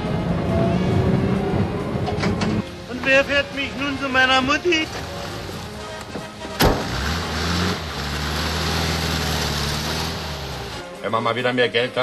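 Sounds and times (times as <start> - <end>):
sharp knock: 6.6 - 6.9
engine running with low hum: 6.6 - 10.8.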